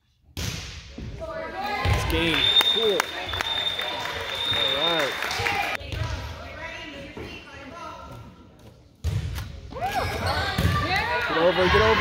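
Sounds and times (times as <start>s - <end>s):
players and spectators voices: 1.1s - 12.0s.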